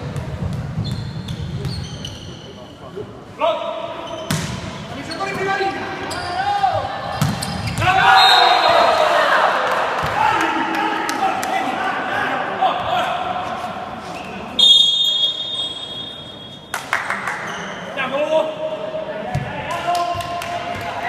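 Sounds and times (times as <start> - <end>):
players shouting: 5.3 - 13.4.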